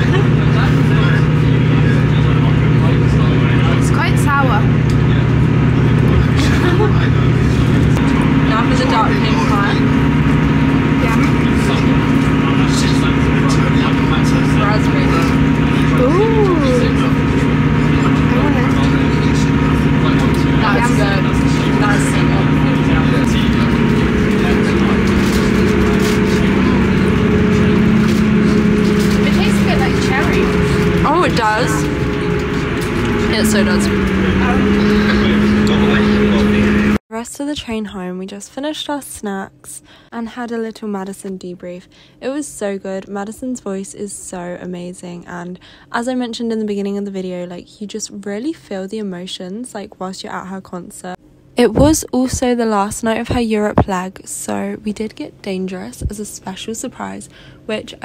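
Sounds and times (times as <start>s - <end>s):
train hum inside carriage: 0.0s - 36.9s.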